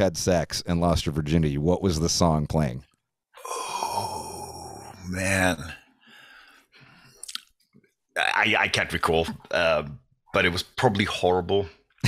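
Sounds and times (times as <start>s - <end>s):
man's long breathy groan: 3.4s - 5.1s.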